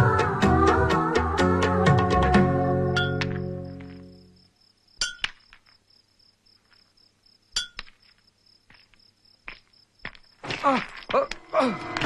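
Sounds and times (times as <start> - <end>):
crickets chirping: 2.4 - 12.0
soft steps on gravel: 7.9 - 11.4.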